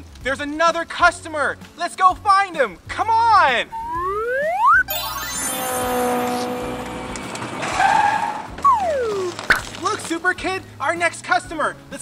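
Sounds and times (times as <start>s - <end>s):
whistle tone sliding down: 3.7s - 6.9s, 8.6s - 9.3s
cartoon tire squeal skid: 3.7s - 9.3s.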